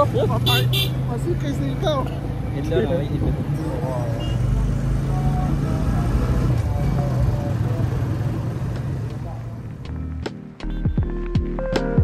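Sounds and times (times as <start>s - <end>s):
motorcycle engine running: 4.2s - 10.0s.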